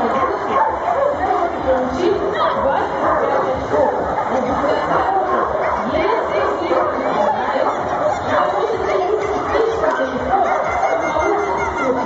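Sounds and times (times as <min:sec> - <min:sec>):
people talking: 0:00.0 - 0:12.0
dog barking: 0:00.2 - 0:01.3, 0:02.4 - 0:09.2, 0:10.3 - 0:11.4.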